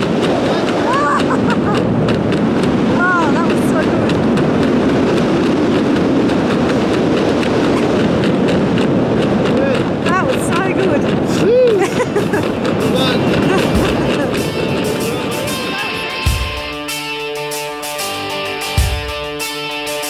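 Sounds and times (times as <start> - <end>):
wind rushing over microphone: 0.0 - 16.8
person exclaiming or laughing: 0.8 - 1.5, 11.3 - 12.2.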